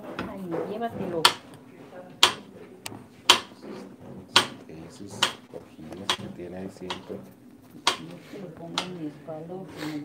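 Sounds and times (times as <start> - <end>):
knife chopping on cutting board: 1.2 - 1.5, 2.2 - 2.5, 3.3 - 7.2, 7.8 - 8.0.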